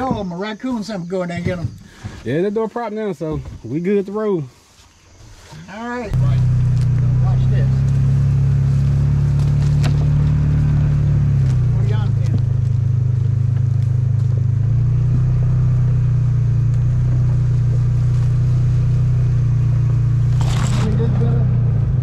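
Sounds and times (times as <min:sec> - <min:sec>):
off-road vehicle engine running: 0:06.0 - 0:22.0.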